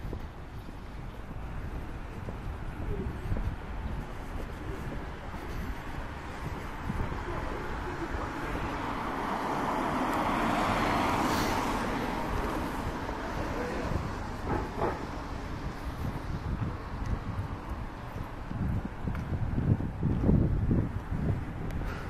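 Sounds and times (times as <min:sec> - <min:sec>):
wind buffeting microphone: 0:00.0 - 0:22.0
car passing: 0:05.0 - 0:18.6.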